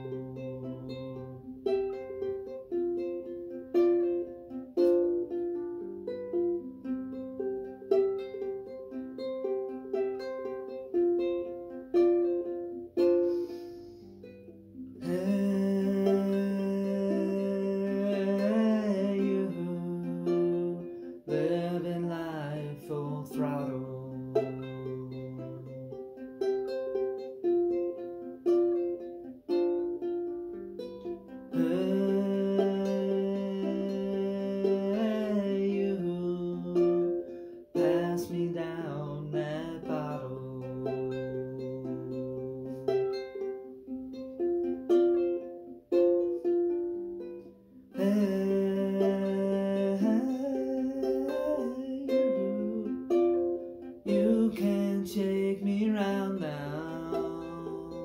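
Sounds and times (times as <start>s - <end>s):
ukulele picking an arpeggio: 0.0s - 58.0s
wordless voice gliding: 48.0s - 53.5s.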